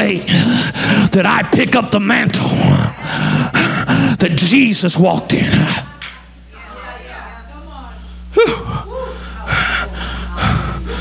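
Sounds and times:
man breathing hard: 0.2 - 1.1, 2.8 - 4.2, 8.2 - 11.0.

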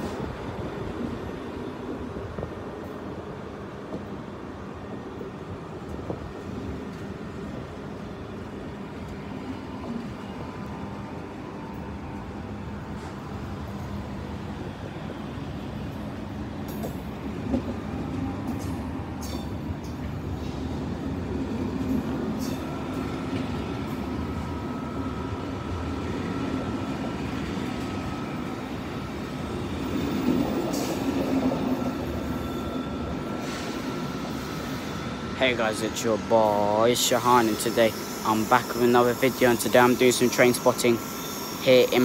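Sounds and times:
train coaches rumbling past: 0.0 - 42.0.

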